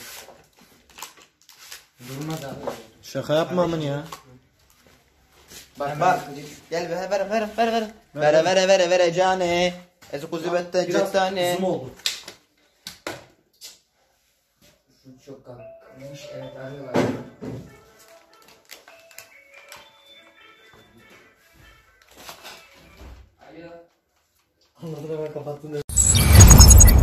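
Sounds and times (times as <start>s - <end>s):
brief rush of noise: 25.9s - 27.0s.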